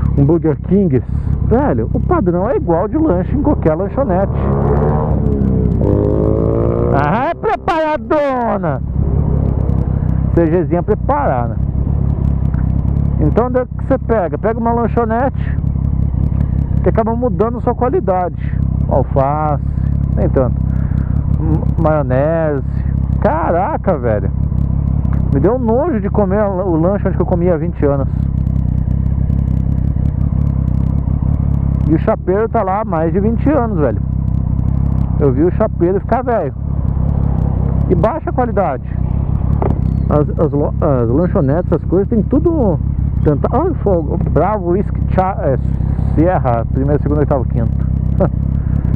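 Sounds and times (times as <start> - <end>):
motorcycle engine revving: 0.0 - 48.9.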